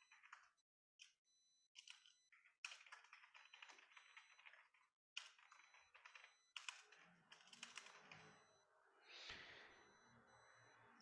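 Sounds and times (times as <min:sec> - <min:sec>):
faint keyboard typing: 0:01.8 - 0:08.6.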